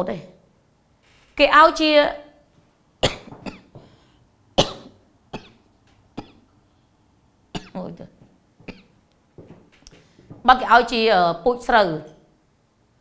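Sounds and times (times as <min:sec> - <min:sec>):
woman coughing: 0:03.0 - 0:03.8, 0:04.6 - 0:05.6, 0:07.6 - 0:07.8.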